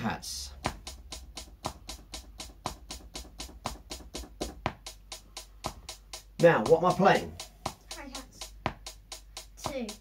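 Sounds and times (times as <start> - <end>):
hi-hat ticks: 0.0 - 10.0.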